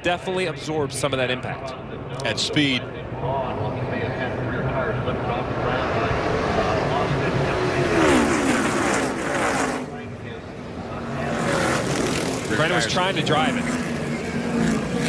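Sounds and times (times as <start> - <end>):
race car engines passing: 2.0 - 15.0.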